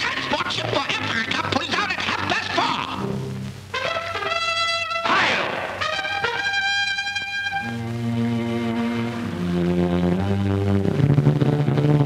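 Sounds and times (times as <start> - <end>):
orchestral cartoon music with brass: 3.7 - 7.8.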